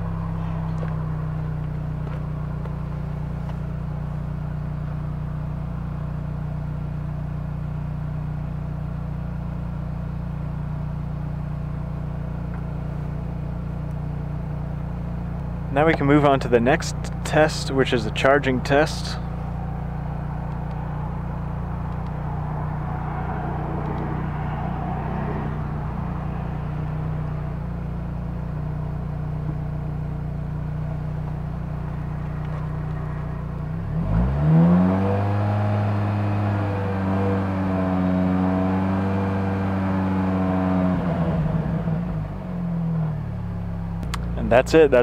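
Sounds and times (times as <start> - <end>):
car engine idling and revving: 0.0 - 45.0.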